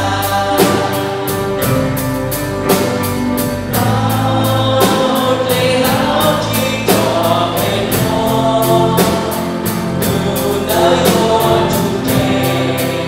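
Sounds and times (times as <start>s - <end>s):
bass guitar: 0.0s - 13.0s
drums and cymbals: 0.0s - 13.0s
electric guitar: 0.0s - 13.0s
person singing: 0.0s - 13.0s.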